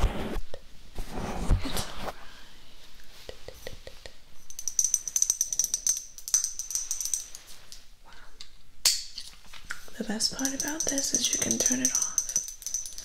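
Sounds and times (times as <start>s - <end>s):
steady high ringing: 4.4s - 7.7s, 10.4s - 13.0s
small object rattling and jingling: 4.4s - 7.8s, 10.3s - 13.0s.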